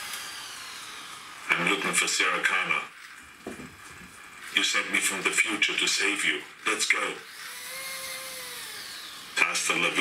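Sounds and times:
servo motor whining: 0.0s - 1.4s, 7.3s - 9.8s.

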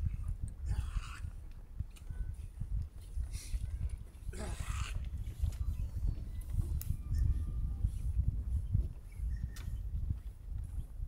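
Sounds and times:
constant low rumble: 0.0s - 11.0s.

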